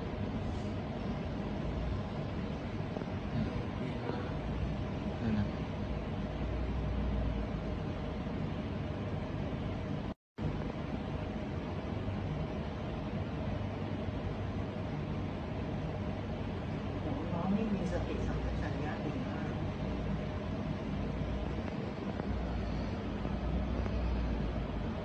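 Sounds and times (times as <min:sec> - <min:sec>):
low rumbling noise: 0:00.0 - 0:25.0.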